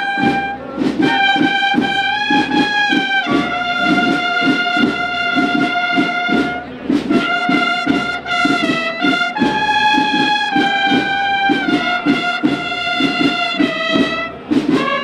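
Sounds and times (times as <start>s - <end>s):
brass marching band playing: 0.0s - 15.0s.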